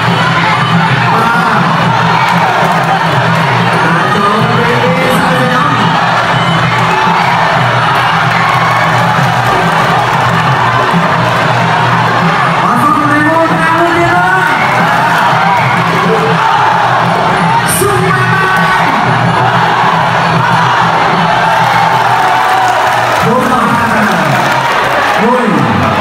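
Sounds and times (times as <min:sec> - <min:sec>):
crowd cheering and shouting: 0:00.0 - 0:26.0.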